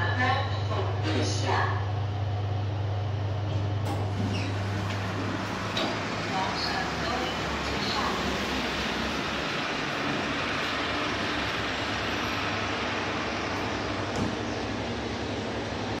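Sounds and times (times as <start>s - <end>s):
loud background noise: 0.0s - 16.0s
lift doors sliding shut: 3.5s - 15.9s.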